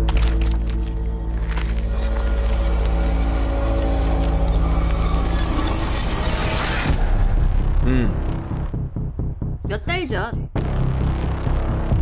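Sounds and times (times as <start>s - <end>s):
dark horror score: 0.0s - 9.6s.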